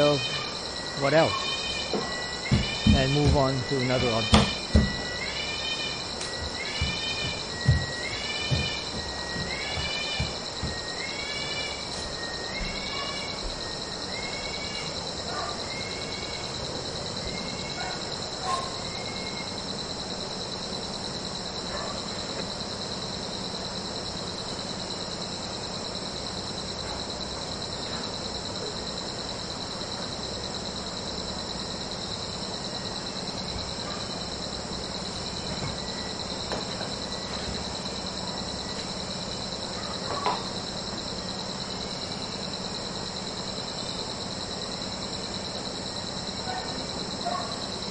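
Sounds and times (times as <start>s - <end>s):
insects trilling: 0.0s - 47.9s.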